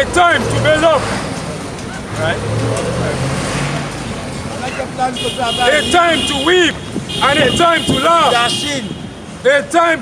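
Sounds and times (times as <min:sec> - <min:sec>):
passing vehicles rushing: 0:00.0 - 0:10.0.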